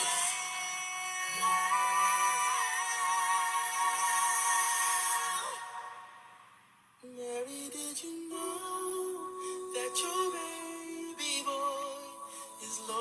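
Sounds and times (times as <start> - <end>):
voices singing in harmony: 0.0 - 6.6, 7.4 - 13.0.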